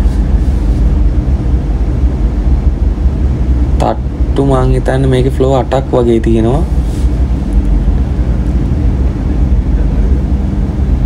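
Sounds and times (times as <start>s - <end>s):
escalator rumbling: 0.0s - 11.0s
faint low hum: 0.0s - 11.0s.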